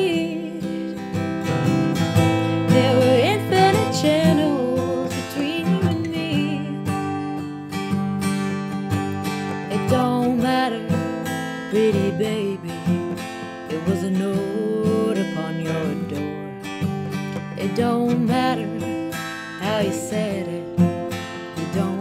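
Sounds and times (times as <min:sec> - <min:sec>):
acoustic guitar strummed: 0:00.0 - 0:22.0.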